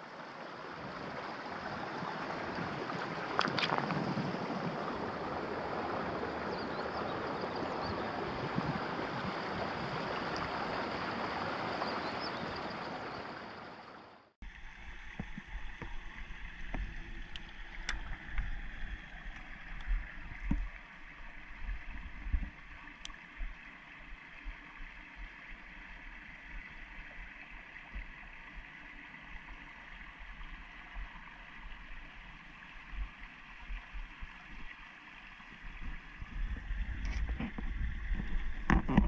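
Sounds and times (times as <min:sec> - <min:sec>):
river flowing over stones: 0:00.0 - 0:39.0
stream water trickling: 0:00.0 - 0:39.0
small pops and drips: 0:22.2 - 0:23.6.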